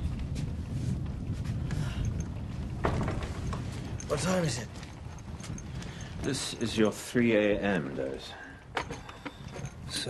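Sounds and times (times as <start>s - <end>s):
steady low rumble: 0.0s - 8.0s
clattering and creaking: 1.5s - 10.0s.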